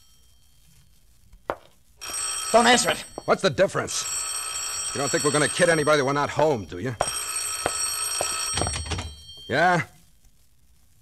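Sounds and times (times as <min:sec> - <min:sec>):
telephone bell ringing: 0:02.0 - 0:09.9.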